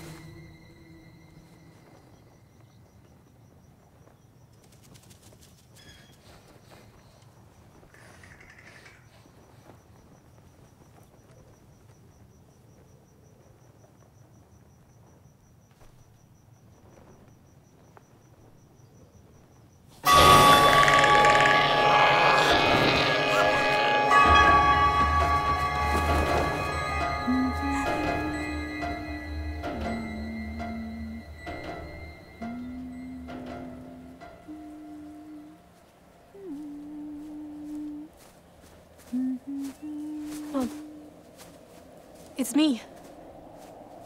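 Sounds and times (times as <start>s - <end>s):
high-pitched insect trill: 0.0s - 6.2s, 20.0s - 44.0s
loud horror music stinger: 20.1s - 34.3s.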